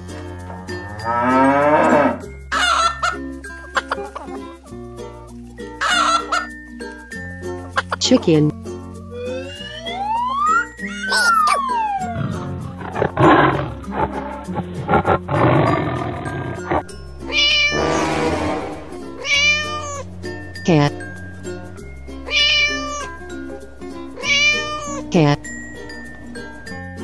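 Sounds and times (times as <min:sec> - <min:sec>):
cartoon background music: 0:00.0 - 0:27.0
rough animal call: 0:00.1 - 0:04.0, 0:05.7 - 0:06.6, 0:10.0 - 0:20.1, 0:22.2 - 0:23.4
cat meowing: 0:10.8 - 0:12.4, 0:17.3 - 0:18.1, 0:19.2 - 0:20.0, 0:22.3 - 0:23.3, 0:24.2 - 0:25.1.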